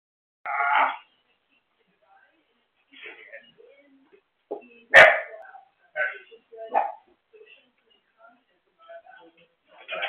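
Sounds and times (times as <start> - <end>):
dog barking: 4.9 - 5.4, 6.7 - 7.0.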